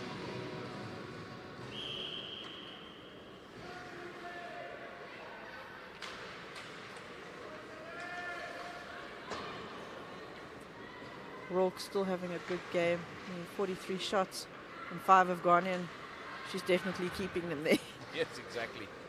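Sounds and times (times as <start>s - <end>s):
referee's whistle: 1.7s - 3.1s.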